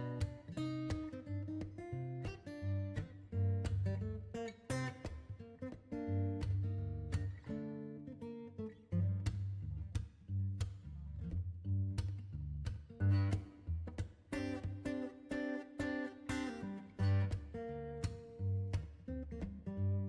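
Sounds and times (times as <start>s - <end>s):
acoustic guitar music: 0.0s - 20.0s.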